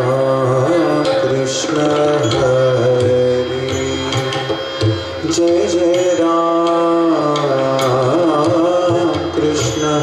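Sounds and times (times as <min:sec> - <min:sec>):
low tabla drumming: 0:00.0 - 0:10.0.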